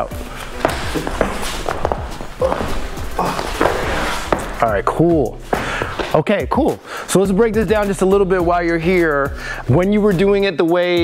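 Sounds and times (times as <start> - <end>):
feet scuffling: 0.0 - 6.2
background music: 0.0 - 11.0.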